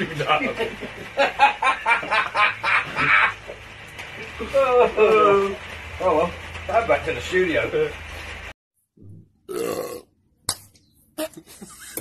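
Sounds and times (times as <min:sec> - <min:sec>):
man burping: 0:09.5 - 0:10.1.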